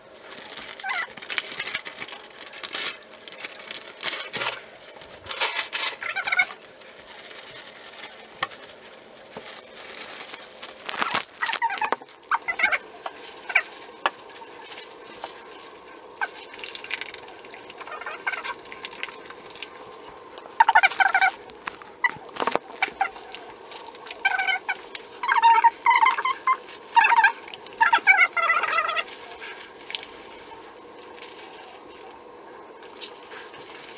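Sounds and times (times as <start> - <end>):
plastic crinkling: 0.0 - 33.9
animal short wavering calls: 11.4 - 12.9, 24.1 - 29.5.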